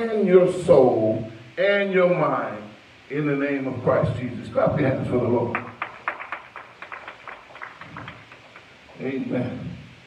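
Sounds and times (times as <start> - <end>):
hands clapping: 5.5 - 9.0.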